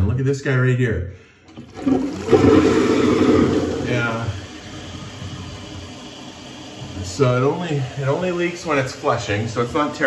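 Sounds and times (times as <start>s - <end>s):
toilet cistern flushing: 1.4s - 10.0s.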